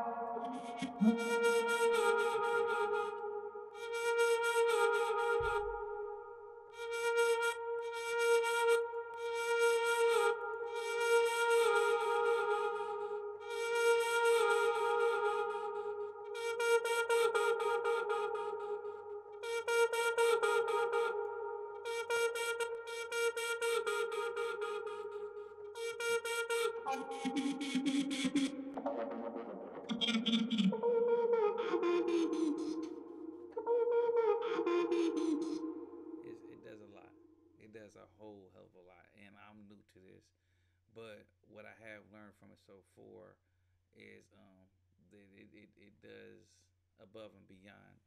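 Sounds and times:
sustained vocal pad: 0.0 - 6.1, 9.6 - 39.8
rhythmically chopped airy layer: 14.0 - 30.8, 31.4 - 33.6, 34.4 - 36.3.

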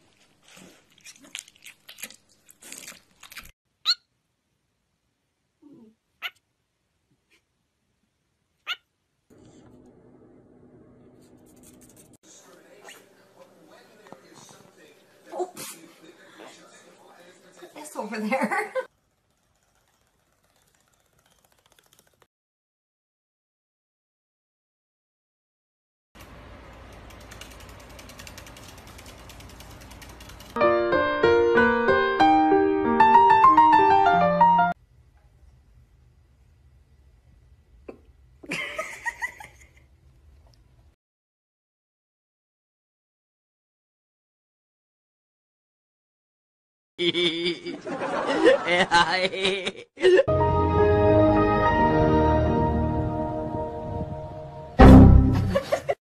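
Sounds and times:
cockatiel chirps: 3.8 - 4.1
faint fast clicking rattle: 18.9 - 22.3, 26.9 - 30.6
piano music: 30.6 - 34.8, 50.3 - 55.6.

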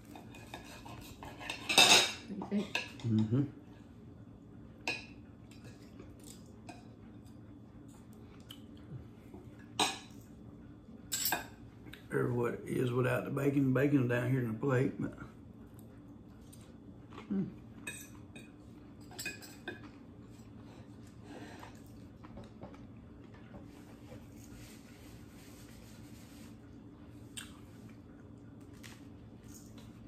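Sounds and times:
cutlery scraping a plate: 0.0 - 3.3, 17.8 - 20.8
faint low hum: 0.0 - 30.0.

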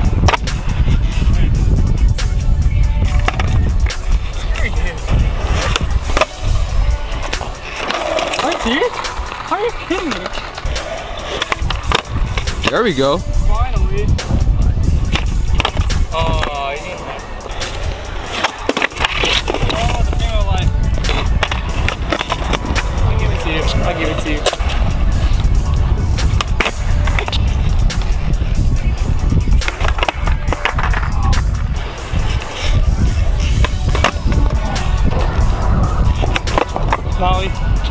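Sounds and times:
skateboard clacking on concrete: 0.3 - 1.3, 2.2 - 13.2, 15.1 - 37.9.

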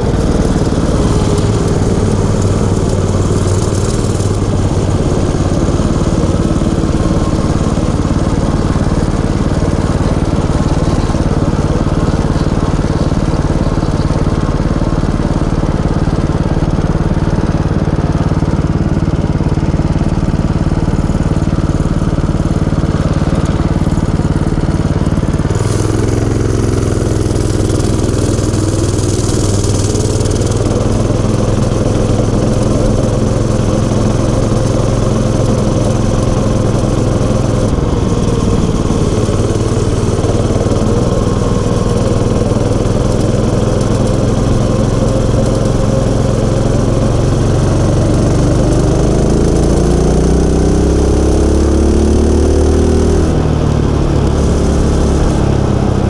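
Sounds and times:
small motorbike engine revving: 0.0 - 56.0.

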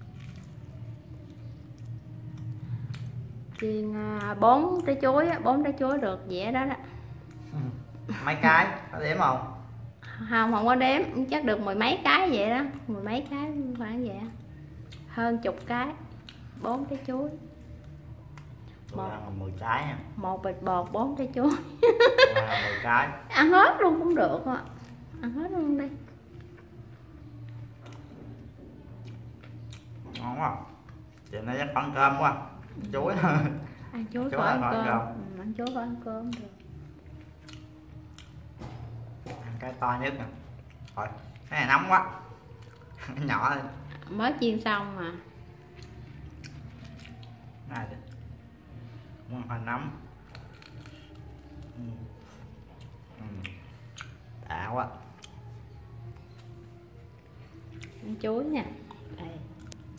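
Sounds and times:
person chewing crispy food: 0.0 - 6.0, 14.3 - 16.9, 28.9 - 31.9, 35.6 - 41.6, 42.4 - 44.1, 45.4 - 48.5, 50.0 - 54.4, 55.0 - 56.6, 57.2 - 58.1
steady low hum: 0.0 - 59.9.

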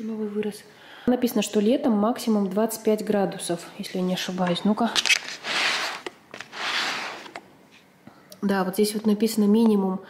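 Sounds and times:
soft rustling: 4.3 - 7.9.

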